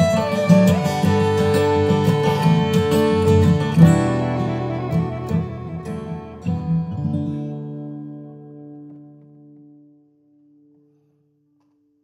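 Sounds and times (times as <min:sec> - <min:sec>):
acoustic guitar chord ringing: 0:00.0 - 0:09.6.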